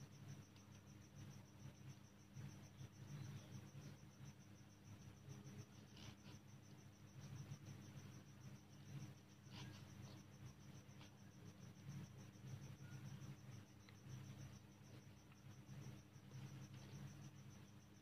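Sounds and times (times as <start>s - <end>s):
low steady hum: 0.0s - 18.0s
pen writing on paper: 5.6s - 6.4s, 9.5s - 11.2s
faint high chirp: 11.3s - 14.6s.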